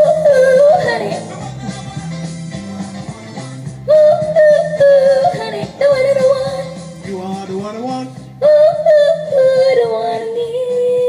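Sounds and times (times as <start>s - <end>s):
woman singing into microphone: 0.0s - 1.5s, 3.9s - 7.0s, 8.4s - 11.0s
karaoke backing music: 0.0s - 11.0s.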